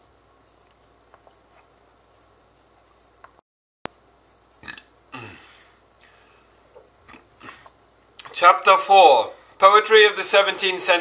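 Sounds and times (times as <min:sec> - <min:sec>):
man's mouth noise: 0:04.6 - 0:05.6, 0:06.7 - 0:08.3
man's low grunt: 0:05.1 - 0:05.5.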